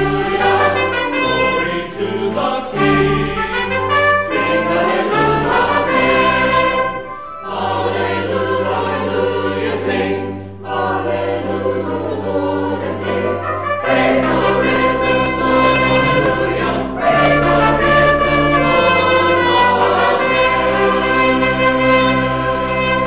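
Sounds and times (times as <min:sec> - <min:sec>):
choir singing: 0:00.0 - 0:23.0
organ accompaniment: 0:00.0 - 0:23.0.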